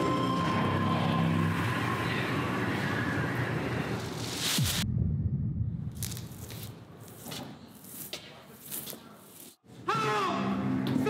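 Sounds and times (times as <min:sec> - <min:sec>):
music: 0:00.0 - 0:01.8
noisy sound-design bed: 0:00.0 - 0:06.0.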